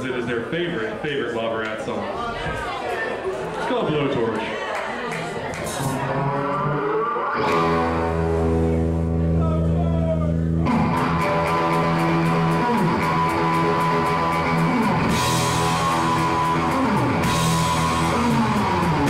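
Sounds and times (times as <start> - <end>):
electric guitar pitch slides: 5.8 - 9.7, 10.3 - 19.0
surf rock band playing live: 5.8 - 19.0
drums: 7.3 - 19.0.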